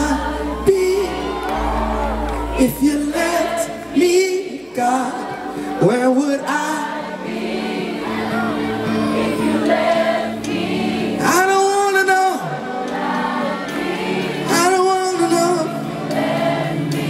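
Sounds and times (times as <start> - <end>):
band playing sustained chords: 0.0 - 17.0
voices singing: 0.0 - 17.0.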